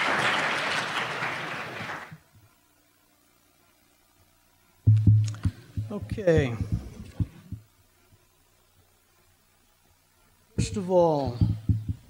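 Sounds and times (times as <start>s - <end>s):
dull low thumps: 4.9s - 7.7s, 11.4s - 12.0s.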